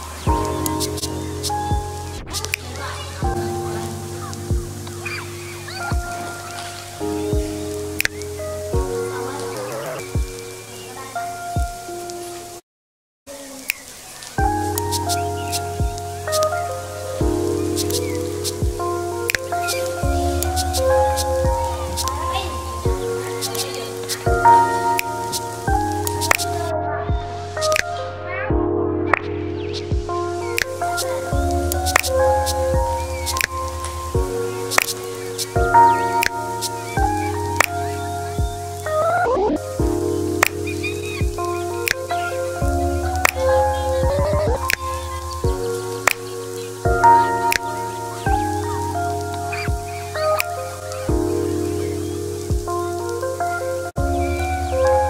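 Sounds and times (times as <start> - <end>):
sampled chords: 0.0 - 12.4, 14.4 - 55.0
deep kick drum: 0.3 - 0.5, 1.7 - 2.4, 4.5 - 4.8, 5.9 - 6.2, 7.3 - 7.6, 8.8 - 9.0, 10.2 - 10.4, 15.8 - 16.0, 18.6 - 18.8, 20.0 - 20.4, 21.4 - 21.6, 22.9 - 23.1, 28.5 - 28.7, 29.9 - 30.2, 34.2 - 34.4, 38.4 - 38.6, 39.8 - 40.0, 44.0 - 44.8, 45.4 - 45.6, 49.7 - 49.9, 52.5 - 52.7.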